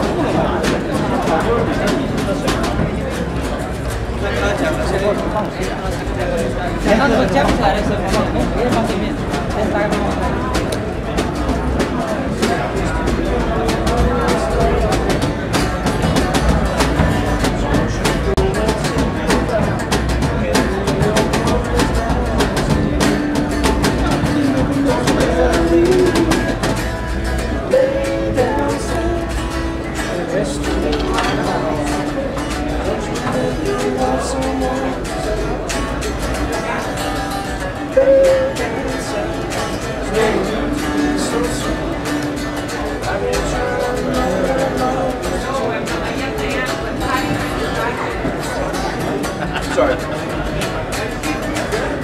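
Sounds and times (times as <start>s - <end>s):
blues guitar with bent notes: 0.0s - 52.0s.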